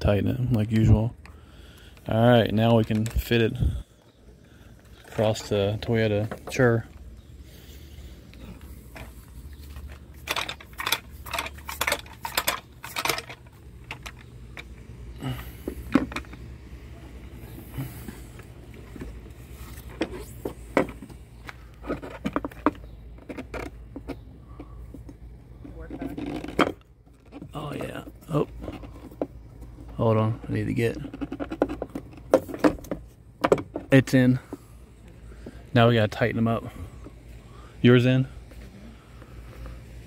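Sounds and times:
low steady rumble: 0:00.0 - 0:40.0
roof rack clicking and clattering: 0:08.3 - 0:16.5.

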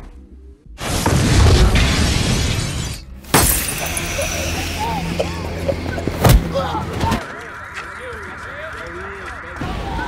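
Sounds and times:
crash of shattering glass: 0:01.2 - 0:04.6.

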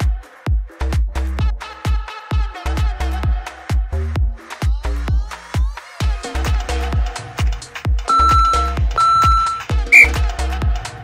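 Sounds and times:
electronic dance music: 0:08.1 - 0:10.2
interval timer beeping: 0:08.1 - 0:10.2.

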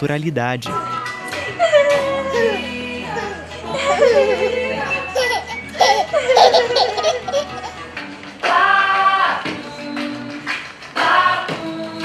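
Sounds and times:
background music: 0:00.0 - 0:12.0
baby giggling: 0:03.2 - 0:08.0.

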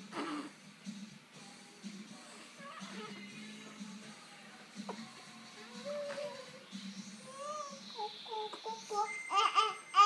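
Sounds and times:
quiet background music: 0:00.0 - 0:10.0.

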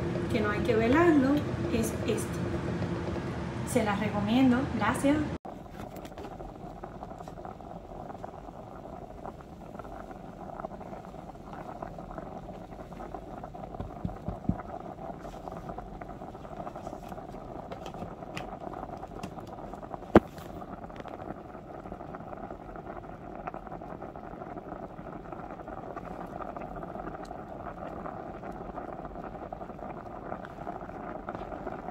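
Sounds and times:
water boiling and bubbling: 0:00.0 - 0:31.9.

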